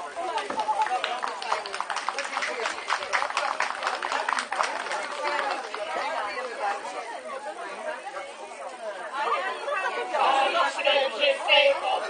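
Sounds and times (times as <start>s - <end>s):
overlapping chatter: 0.0s - 12.0s
hand clapping: 0.3s - 5.8s.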